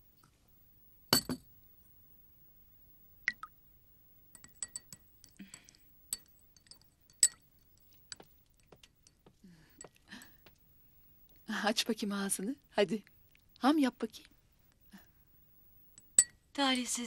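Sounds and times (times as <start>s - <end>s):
tableware tapping: 1.2s - 1.5s, 4.4s - 5.0s
teaspoon clinking in china teacup: 4.4s - 8.2s, 16.0s - 16.4s.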